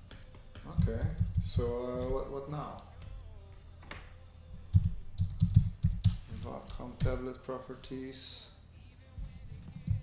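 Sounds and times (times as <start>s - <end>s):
computer keyboard typing: 4.7s - 6.8s.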